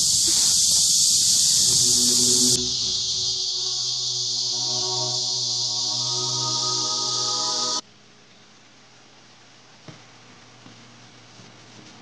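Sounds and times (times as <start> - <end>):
high-pitched insect chorus: 0.0 - 7.8
music with sustained notes: 1.4 - 7.8.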